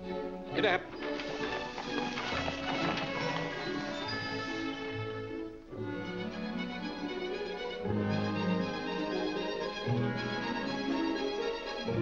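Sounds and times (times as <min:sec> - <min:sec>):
orchestral film score: 0:00.0 - 0:12.0.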